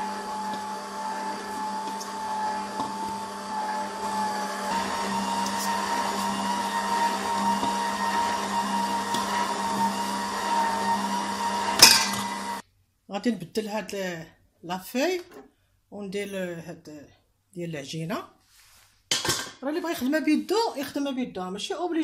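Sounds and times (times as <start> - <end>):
stand mixer motor whining: 0.0 - 12.6.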